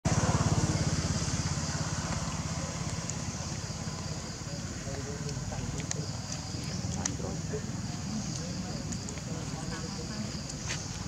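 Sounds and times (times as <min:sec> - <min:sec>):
motorcycle engine running: 0:00.1 - 0:08.6.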